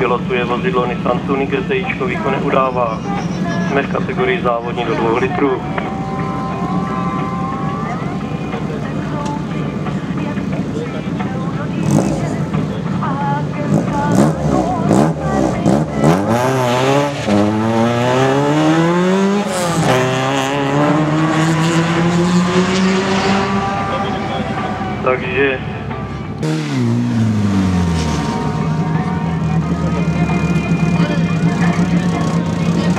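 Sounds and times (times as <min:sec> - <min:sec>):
car engine revving and accelerating: 0:11.6 - 0:25.0, 0:25.6 - 0:32.9.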